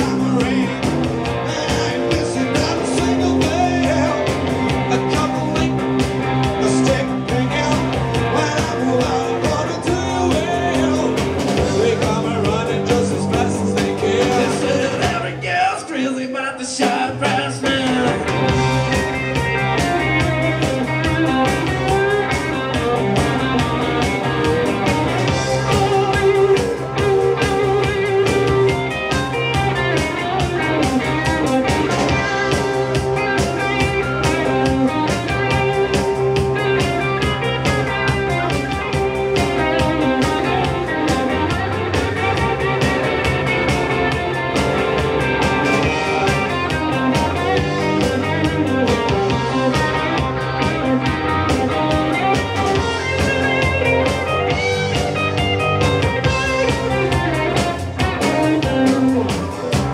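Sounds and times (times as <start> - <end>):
bass guitar: 0.0 - 59.9
drum kit: 0.0 - 59.9
electric guitars: 0.0 - 59.9.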